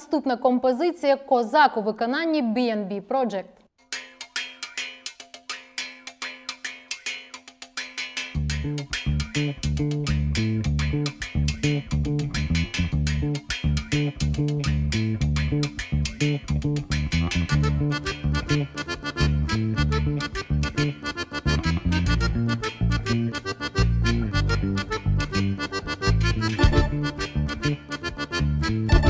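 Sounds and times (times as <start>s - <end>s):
bandura plucked in quick notes: 8.2s - 18.8s, 26.4s - 27.8s
low bass and chord accompaniment: 16.4s - 29.0s.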